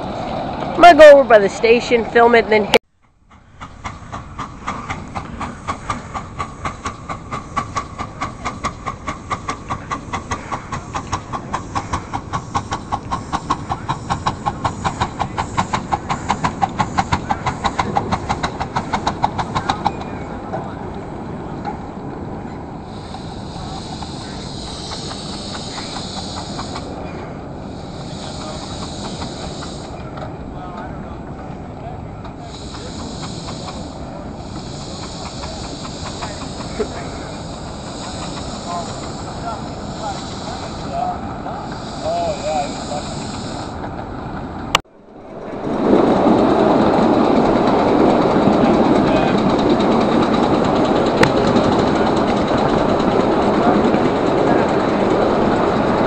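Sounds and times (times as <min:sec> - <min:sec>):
engine hissing steam: 0:00.0 - 0:44.8, 0:45.7 - 0:56.0
steam locomotive chuffing: 0:00.0 - 0:56.0.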